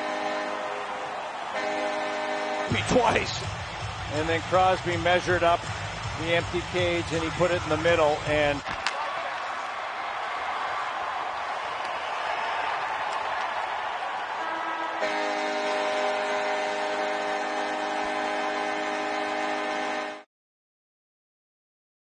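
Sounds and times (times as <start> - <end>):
arena horn blast: 0.0 - 3.5, 14.4 - 20.2.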